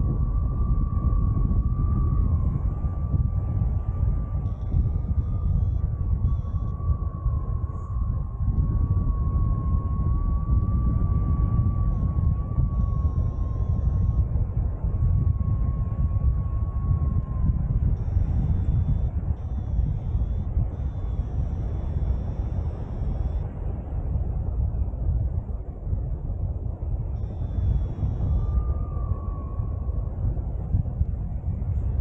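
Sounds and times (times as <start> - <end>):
thin wavering high tone: 0.0 - 23.5, 27.1 - 30.8
wind rushing over microphone: 0.0 - 32.0
faint higher tones: 0.2 - 23.5, 27.2 - 30.3.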